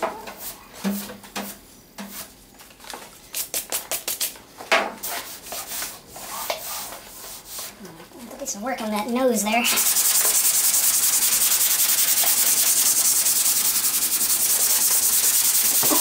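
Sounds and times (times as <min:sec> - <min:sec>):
rubbing strokes on car hood: 0:09.7 - 0:16.0.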